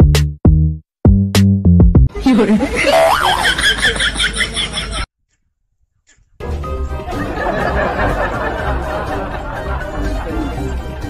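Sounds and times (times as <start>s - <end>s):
person speaking: 2.1s - 3.1s.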